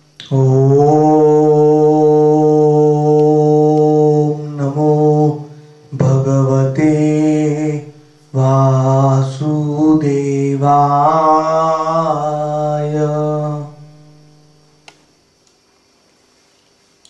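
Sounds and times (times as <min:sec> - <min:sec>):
man chanting in held notes: 0:00.2 - 0:14.6.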